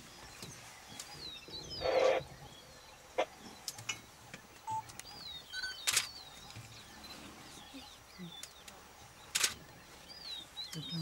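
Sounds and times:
birds whistling: 0.4 - 11.0
sharp clicks: 5.8 - 6.1, 8.4 - 9.6.

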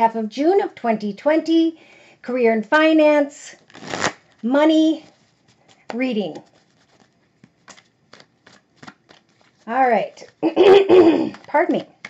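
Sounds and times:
cards being shuffled: 3.6 - 12.0.

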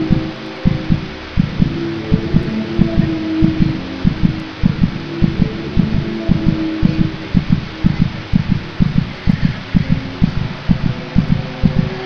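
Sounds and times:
heartbeat-like double thump: 0.0 - 12.0
low droning tone: 0.0 - 12.0.

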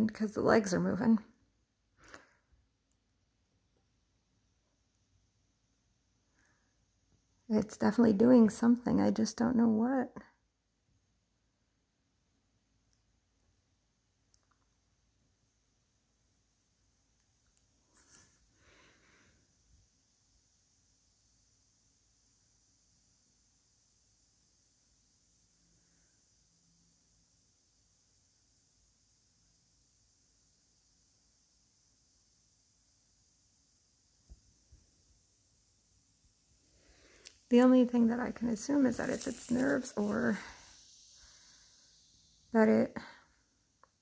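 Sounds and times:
faint click: 14.3 - 14.8, 17.2 - 18.2.

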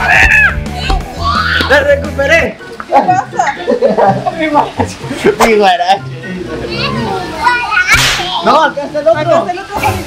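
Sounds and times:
young children calling out: 0.0 - 1.7, 6.8 - 8.2.

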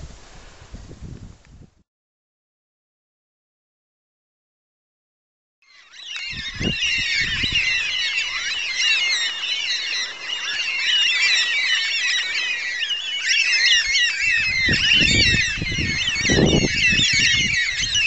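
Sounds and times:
cockatoos squawking: 5.7 - 18.0.

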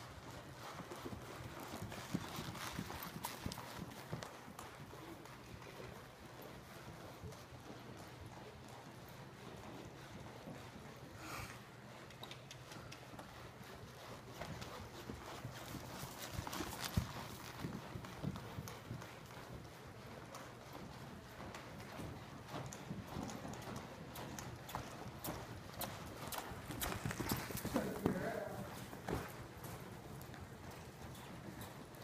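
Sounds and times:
hoofbeats on loose dirt: 0.0 - 32.0.

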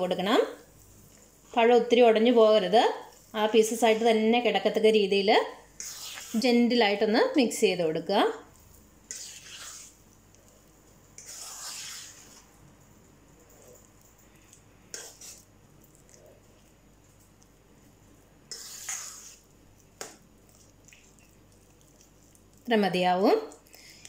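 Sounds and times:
batter scraping in metal bowl: 5.8 - 6.5, 9.1 - 10.0, 11.2 - 12.5, 14.9 - 15.5, 18.5 - 19.5.

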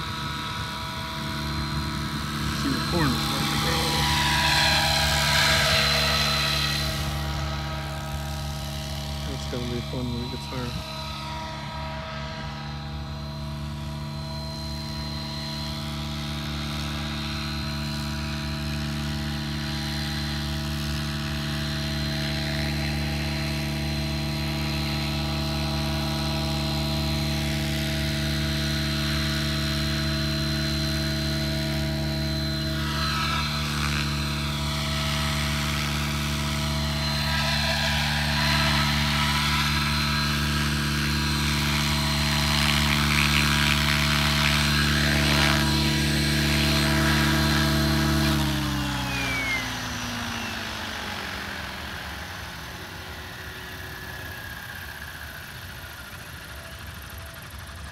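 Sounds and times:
rc helicopter hovering: 0.0 - 57.9.

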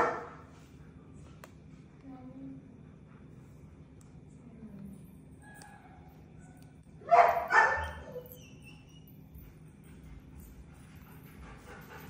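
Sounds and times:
dog barking: 0.0 - 0.4, 7.0 - 8.4.

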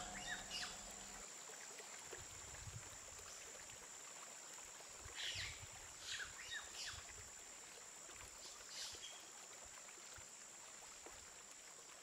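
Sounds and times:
soft low rumbles: 0.0 - 1.2
thin high-pitched tone: 0.0 - 1.2
low hiss: 0.0 - 1.5.

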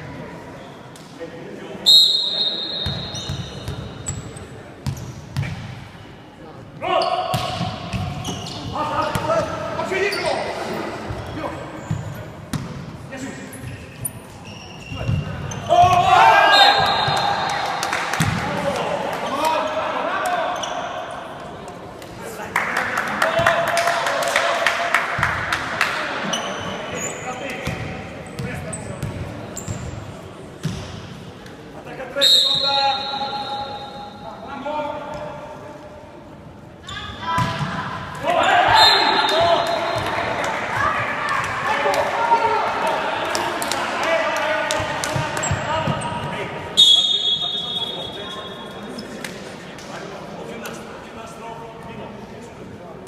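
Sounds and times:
crowd voices: 0.0 - 53.0
referee's whistle: 1.8 - 3.7, 16.4 - 17.6, 32.2 - 34.2, 38.6 - 40.1, 46.8 - 48.8
shoes squeaking on court: 2.3 - 6.2, 7.0 - 9.4, 10.0 - 12.7, 13.4 - 16.0, 26.2 - 30.9, 45.2 - 49.2
volleyball strikes: 7.3 - 9.5, 15.0 - 18.6
players shouting: 15.5 - 21.0, 38.2 - 46.3.

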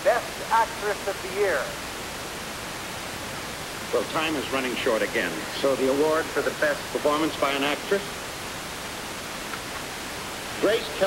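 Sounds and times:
person speaking: 0.0 - 1.8
steady hiss: 0.0 - 11.0.

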